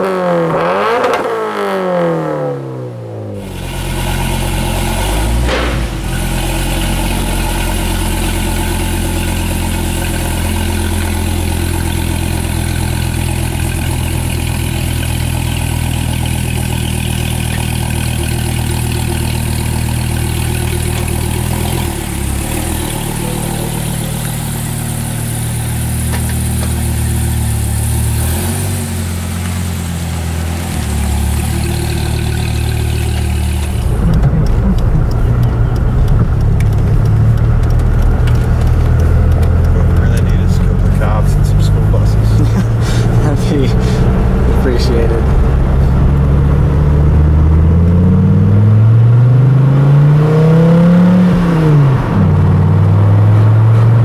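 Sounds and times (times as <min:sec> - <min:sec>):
car engine idling: 0:03.2 - 0:49.3
engine revving burst: 0:03.4 - 0:09.5
sweeping tones intro sting: 0:21.9 - 0:26.1.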